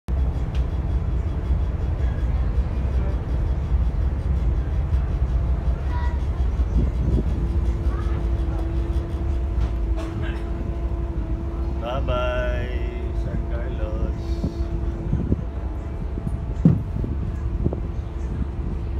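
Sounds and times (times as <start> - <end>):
ferry engines droning: 0.1 - 18.9
steady higher tone: 0.1 - 18.9.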